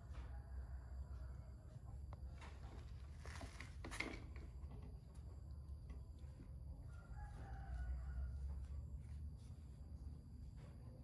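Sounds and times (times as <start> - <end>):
rooster crowing: 6.9 - 8.4.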